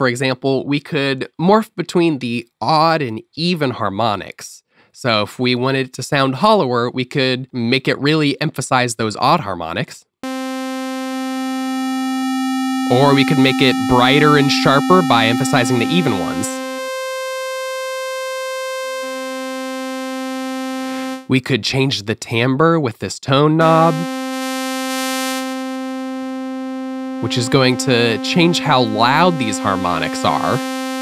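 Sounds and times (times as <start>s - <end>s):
sustained synthesizer note: 10.2s - 21.3s, 23.9s - 31.0s.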